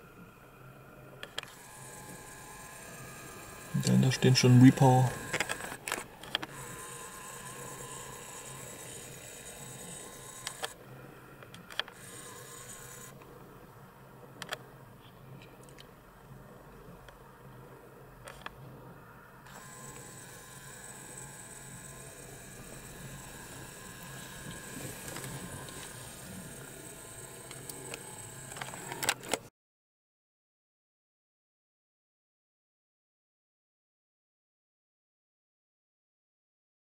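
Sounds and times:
faint outdoor background noise: 0:00.0 - 0:29.5
scattered clicks: 0:03.7 - 0:06.6, 0:10.3 - 0:10.8, 0:23.2 - 0:29.5.

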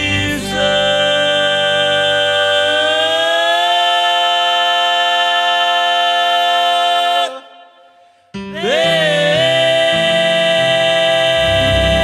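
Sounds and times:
man singing a long note: 0:00.0 - 0:07.8, 0:08.4 - 0:12.0.

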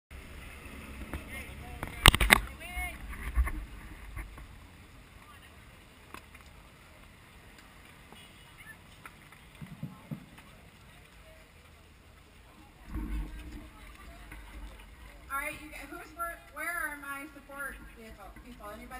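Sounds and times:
distant chatter: 0:00.2 - 0:18.9
wind rumble on microphone: 0:00.8 - 0:04.5, 0:12.8 - 0:16.0.

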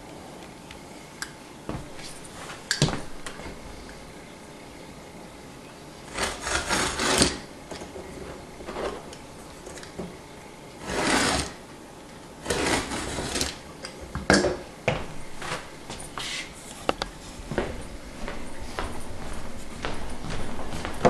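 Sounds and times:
scraping and rubbing: 0:06.1 - 0:07.4, 0:10.8 - 0:11.6, 0:12.4 - 0:13.6.

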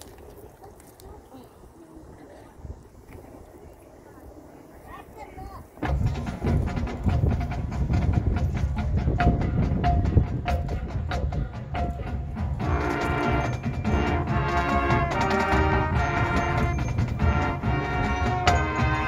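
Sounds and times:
drum and percussion hits: 0:05.8 - 0:19.0
brass and woodwind chords: 0:09.2 - 0:19.0.

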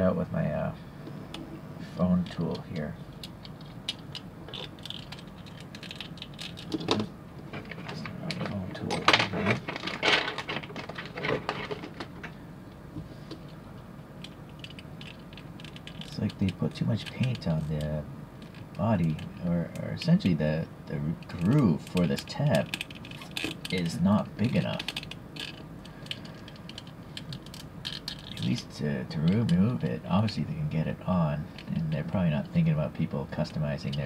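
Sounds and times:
small plastic clicks: 0:03.2 - 0:07.1
plastic tool scraping and clicking: 0:21.2 - 0:28.5.

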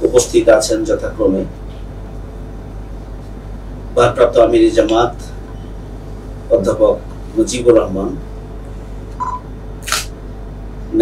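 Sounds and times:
low room hum: 0:00.0 - 0:11.0
camera shutter click: 0:09.8 - 0:10.1.

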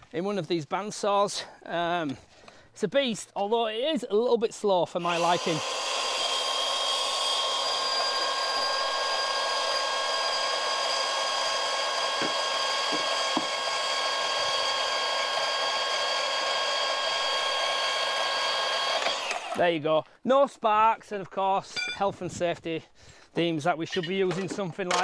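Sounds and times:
band saw cutting steel rod: 0:05.0 - 0:19.6.

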